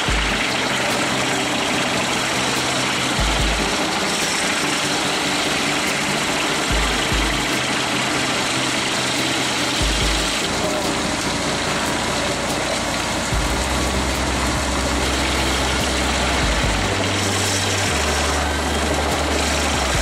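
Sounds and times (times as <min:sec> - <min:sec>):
bass line music: 0:00.0 - 0:20.0
wood chipper running: 0:00.0 - 0:20.0.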